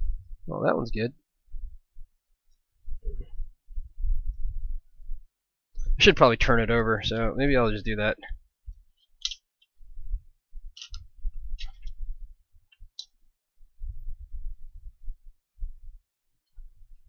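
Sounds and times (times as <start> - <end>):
small sharp clicks: 9.2 - 9.7, 10.7 - 12.0, 12.7 - 13.2.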